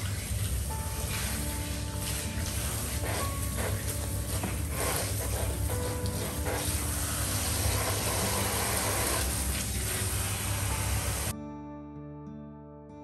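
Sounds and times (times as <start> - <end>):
water spraying onto hair: 0.0 - 11.3.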